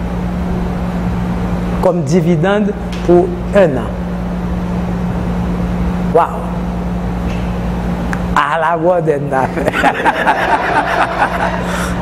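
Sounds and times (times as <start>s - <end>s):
low hum with rumble: 0.0s - 12.0s.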